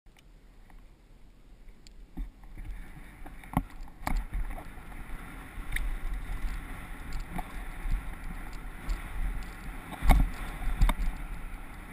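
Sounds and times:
bike clicks and knocks over bumps: 2.0s - 11.9s
wind buffeting microphone: 2.0s - 11.9s
bike frame rattling: 5.8s - 11.8s.

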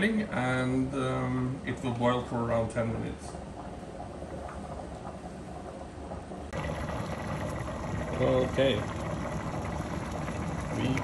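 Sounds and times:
stew bubbling in pot: 0.7s - 11.0s.

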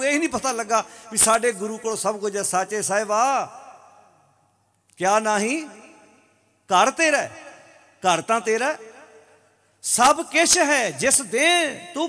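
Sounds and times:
man speaking into a microphone: 0.0s - 4.3s, 4.9s - 12.0s.

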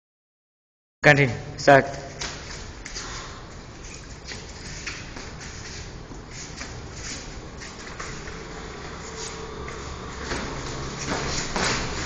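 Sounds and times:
room noise: 1.0s - 12.0s
feet shuffling on mat: 1.9s - 12.0s.

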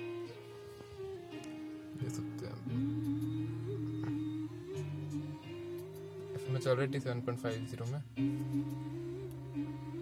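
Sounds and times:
song through car speakers: 0.0s - 10.0s.

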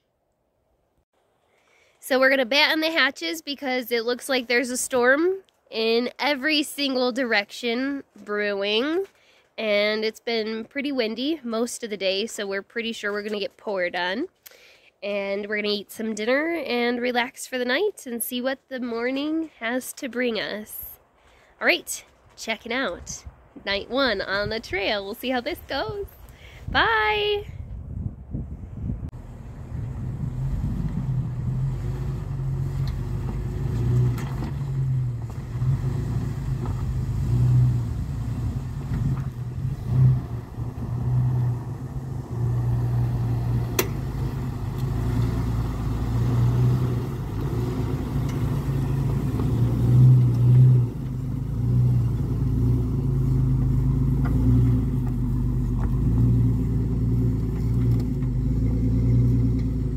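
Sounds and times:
car engine running at low revs: 28.8s - 59.9s.

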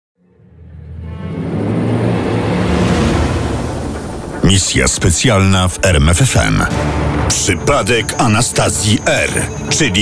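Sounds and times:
dark cinematic music: 0.2s - 10.0s.

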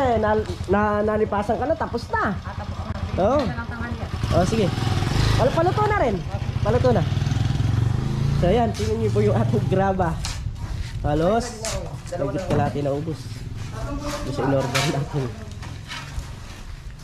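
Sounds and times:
small engine chugging: 0.0s - 7.4s
voices calling out: 11.3s - 15.9s.

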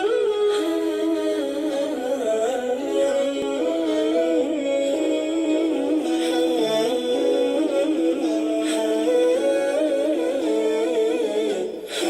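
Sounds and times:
hummed wordless vocal melody: 0.0s - 12.0s.

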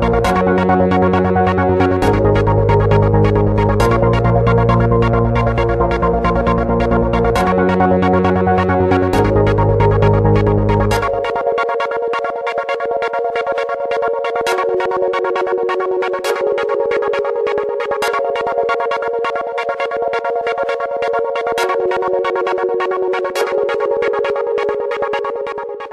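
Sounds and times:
electronic music with synth chords: 0.0s - 25.9s.

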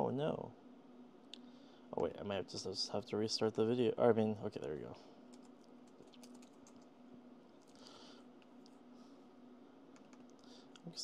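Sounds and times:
faint steady hum: 0.0s - 11.0s
keyboard and mouse clicks: 5.3s - 6.9s, 9.9s - 10.4s.

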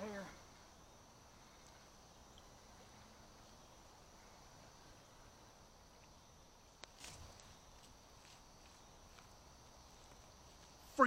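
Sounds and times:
high-pitched insect chorus: 0.0s - 11.0s.

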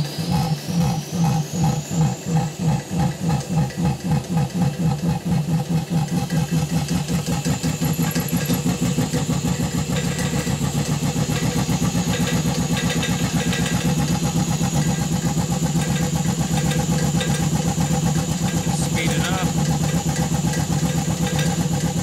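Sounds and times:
air compressor pulsing: 0.0s - 22.0s.

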